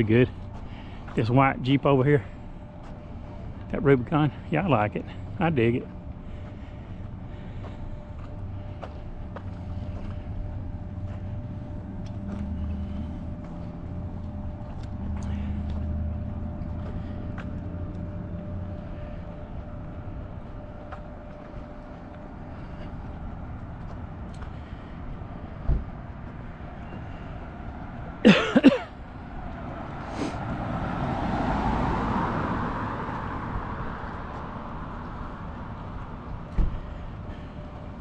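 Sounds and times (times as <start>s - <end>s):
car approaching: 0.0s - 38.0s
low mechanical hum: 0.0s - 38.0s
street traffic: 0.0s - 38.0s
man coughing: 28.2s - 29.0s.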